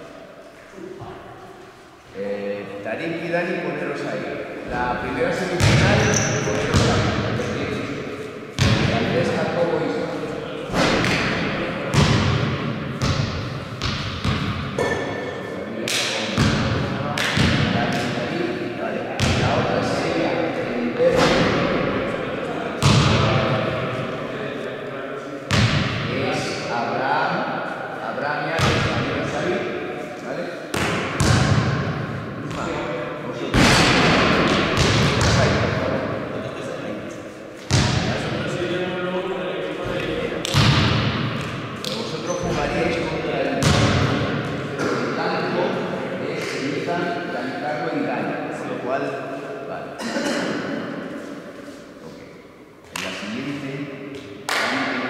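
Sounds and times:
basketball bouncing on court: 0:05.6 - 0:07.2, 0:08.6 - 0:08.9, 0:10.7 - 0:15.0, 0:16.4 - 0:18.1, 0:30.7 - 0:32.7, 0:33.6 - 0:35.7, 0:37.7 - 0:38.1, 0:40.5 - 0:41.6, 0:43.6 - 0:44.4.

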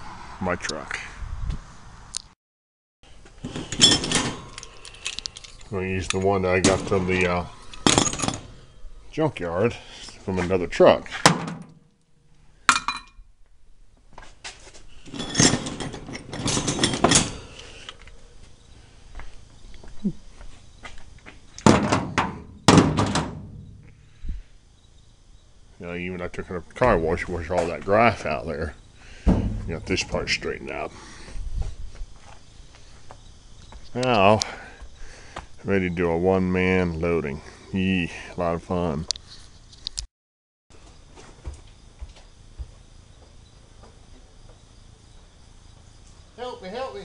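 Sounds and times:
handling knocks and thumps: 0:11.1 - 0:11.8, 0:21.6 - 0:24.0, 0:29.2 - 0:30.8.

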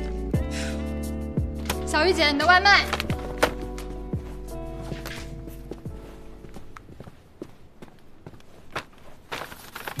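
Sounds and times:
crinkly packaging rustling: 0:08.9 - 0:10.0.

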